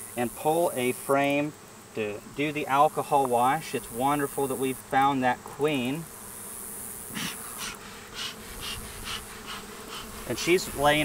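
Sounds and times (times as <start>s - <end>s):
honeybees buzzing: 0.0s - 11.0s
bellows smoker puffs: 7.1s - 11.0s.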